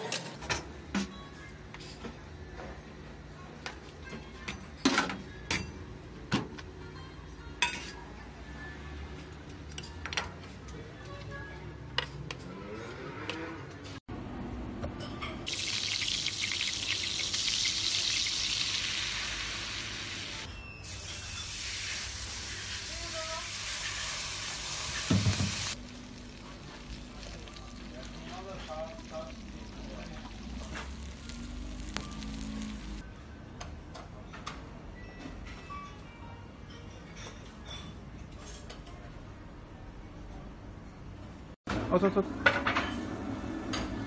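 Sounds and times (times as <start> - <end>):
butter sizzling in a frying pan: 15.5 - 28.2, 28.9 - 33.0.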